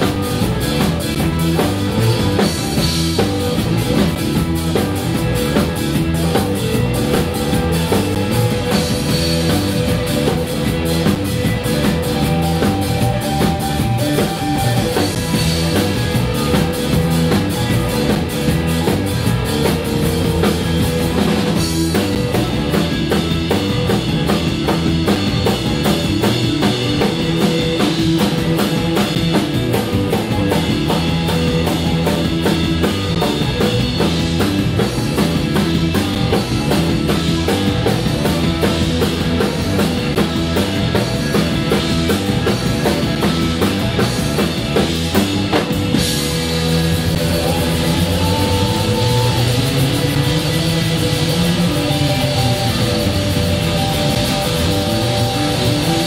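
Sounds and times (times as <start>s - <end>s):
drum kit: 0.0s - 56.0s
electric guitar: 0.0s - 56.0s
funk-rock band playing: 0.0s - 56.0s.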